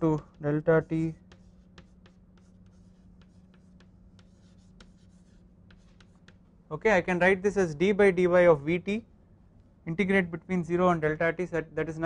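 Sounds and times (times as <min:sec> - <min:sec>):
chalk tapping and scratching: 0:00.0 - 0:06.5
faint low hum: 0:00.0 - 0:12.0.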